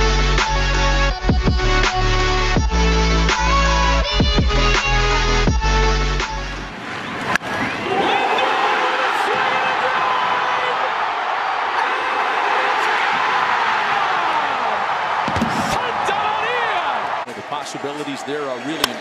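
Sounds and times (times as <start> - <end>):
crowd roaring: 7.0 - 19.0
broadcaster speaking: 15.8 - 19.0.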